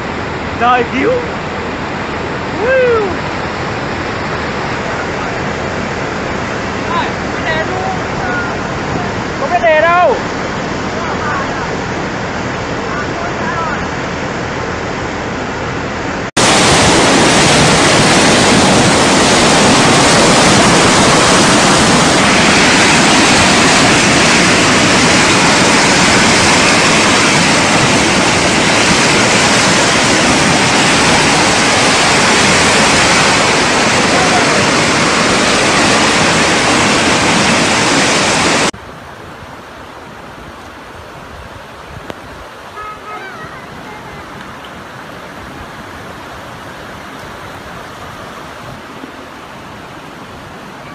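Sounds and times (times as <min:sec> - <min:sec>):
floodwater rushing: 0:00.0 - 0:50.9.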